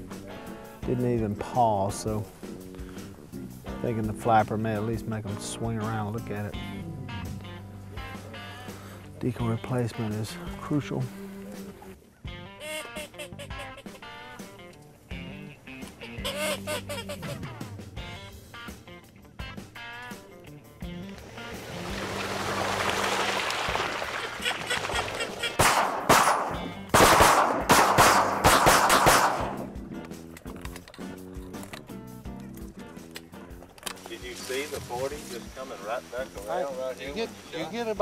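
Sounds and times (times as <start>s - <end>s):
background music: 0.0s - 38.0s
shotgun blasts: 25.6s - 29.8s.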